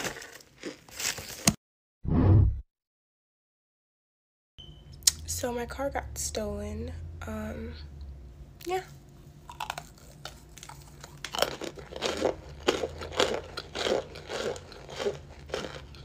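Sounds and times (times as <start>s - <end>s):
person chewing crunchily: 0.0s - 1.4s, 9.4s - 16.0s.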